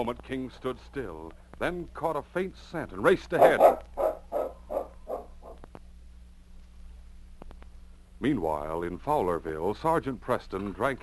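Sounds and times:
low hum of old recording: 0.0 - 11.0
dog barking: 3.4 - 5.6.

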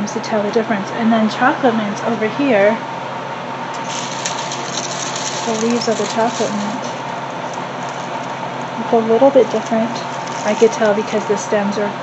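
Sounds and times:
steady background hum: 0.0 - 12.0
dried herbs rustling and crackling: 3.8 - 11.8.

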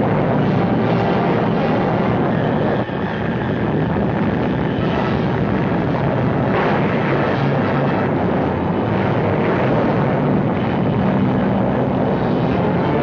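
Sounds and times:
steady noisy roar: 0.0 - 13.0.

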